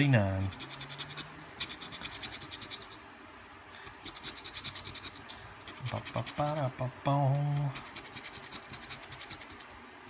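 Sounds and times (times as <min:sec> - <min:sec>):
coin scraping scratch-off ticket: 0:04.0 - 0:06.7, 0:07.3 - 0:09.6.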